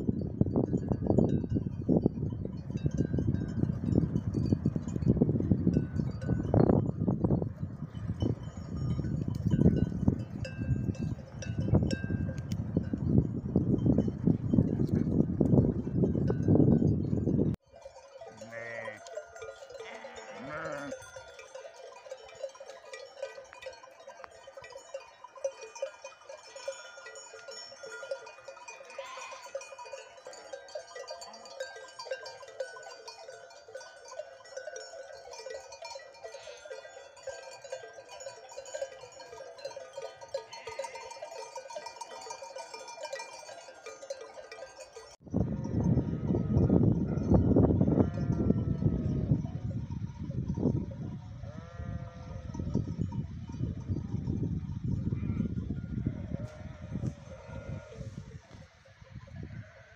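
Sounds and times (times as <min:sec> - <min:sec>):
sheep bells clinking: 0:00.0 - 0:59.9
sheep bleating: 0:18.3 - 0:19.2, 0:19.8 - 0:21.0, 0:29.0 - 0:29.6, 0:51.5 - 0:52.4.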